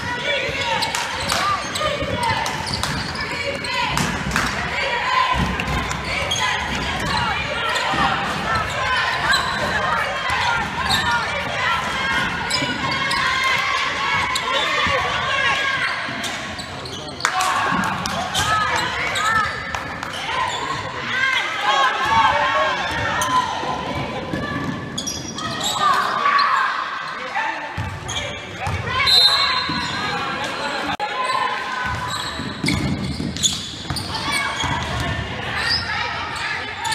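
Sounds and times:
sneakers squeaking: 0.0s - 21.0s, 22.1s - 36.9s.

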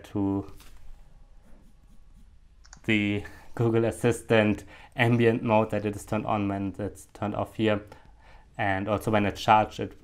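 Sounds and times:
man talking: 0.0s - 0.6s, 2.8s - 8.0s, 8.6s - 10.0s
faint clicks: 2.6s - 2.9s.

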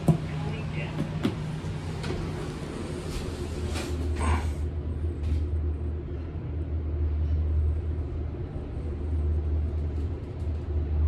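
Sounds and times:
elevator hum: 0.0s - 11.0s.

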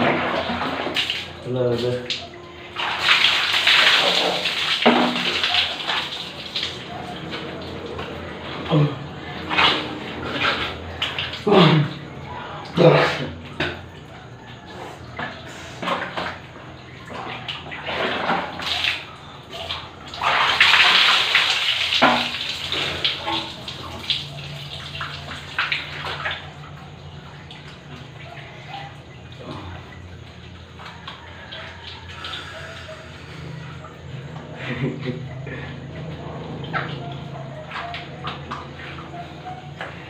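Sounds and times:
water splashing on concrete floor: 0.0s - 40.0s.

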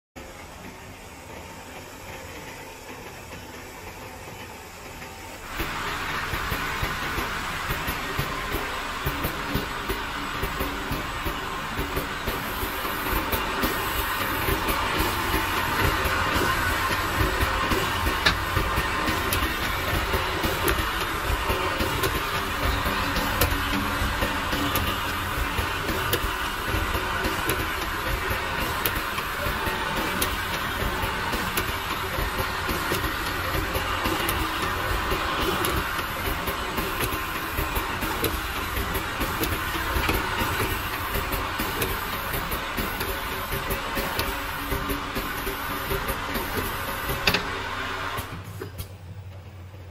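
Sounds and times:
machinery humming and buzzing: 0.2s - 49.9s.

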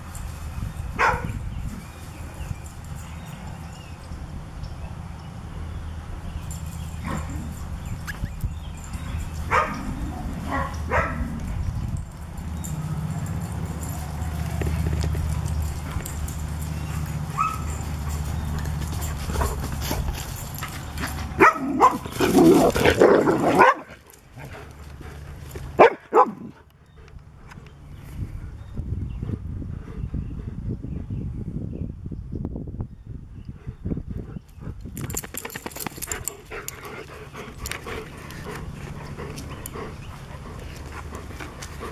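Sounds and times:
dogs barking: 1.0s - 1.4s, 9.3s - 11.5s, 15.3s - 19.7s, 20.8s - 24.1s, 25.7s - 26.6s
dogs panting: 8.6s - 31.1s, 33.5s - 41.9s
sharp clicks and rattles: 34.8s - 38.5s.

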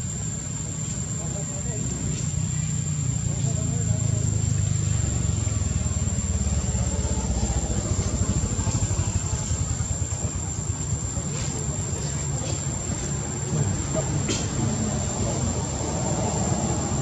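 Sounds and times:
engine running low rumble: 0.0s - 17.0s.

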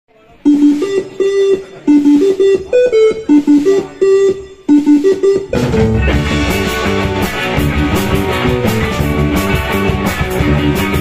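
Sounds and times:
rock band playing: 4.9s - 11.0s
electric guitar riff: 5.5s - 11.0s.

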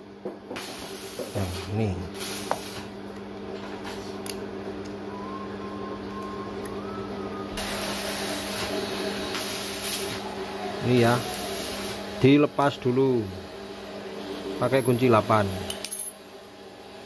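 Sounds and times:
low machine hum: 0.0s - 17.0s.

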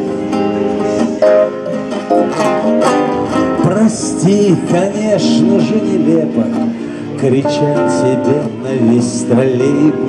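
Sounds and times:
acoustic guitar strumming: 0.0s - 10.0s
keyboard accompaniment: 0.0s - 10.0s
person singing lead vocal: 3.6s - 10.0s.

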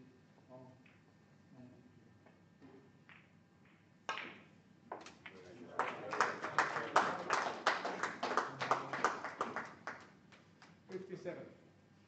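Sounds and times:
snooker balls knocking: 3.0s - 5.5s.

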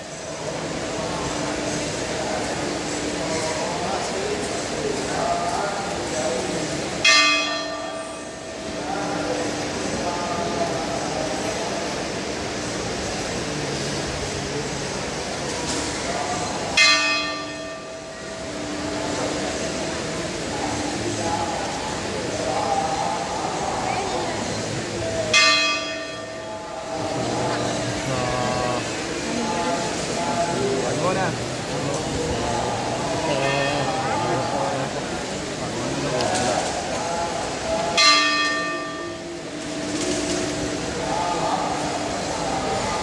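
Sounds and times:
temple bell ringing: 5.6s - 11.0s, 16.6s - 21.6s, 24.4s - 36.6s, 37.6s - 43.0s.

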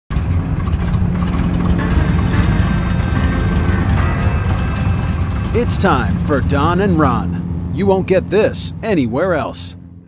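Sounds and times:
propeller plane engine running: 0.1s - 10.0s.

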